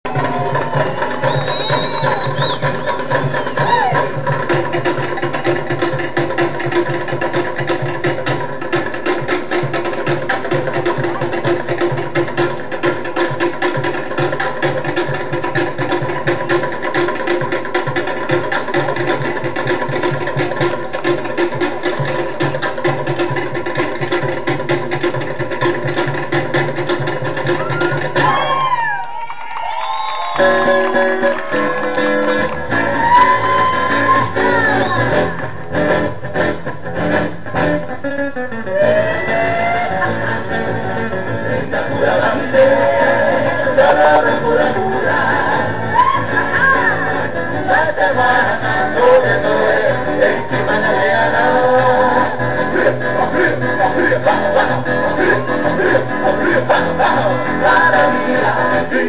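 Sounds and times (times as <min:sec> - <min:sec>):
voices over drumbeat: 0:00.0 - 0:24.7, 0:25.6 - 0:35.6, 0:38.7 - 0:59.0
fast steady drumming: 0:00.0 - 0:29.2, 0:40.0 - 0:59.0
high whoops and cheers: 0:00.1 - 0:04.1, 0:27.6 - 0:35.3, 0:38.7 - 0:40.1, 0:45.9 - 0:47.0.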